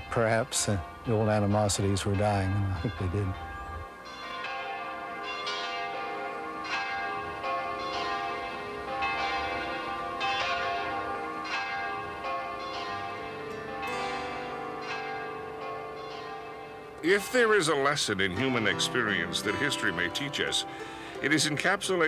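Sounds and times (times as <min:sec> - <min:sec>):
church bell ringing: 0:00.0 - 0:22.0.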